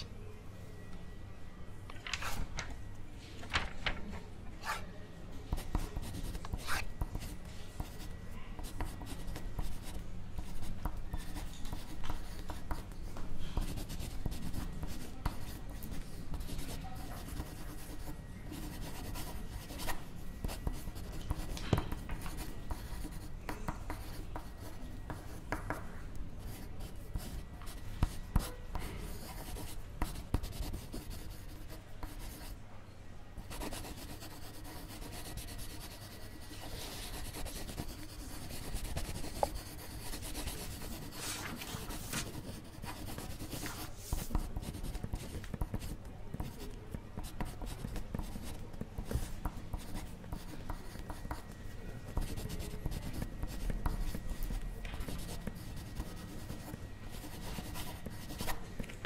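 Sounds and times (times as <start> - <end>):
pencil writing on paper: 4.6 - 4.9, 5.5 - 32.6, 33.4 - 58.6.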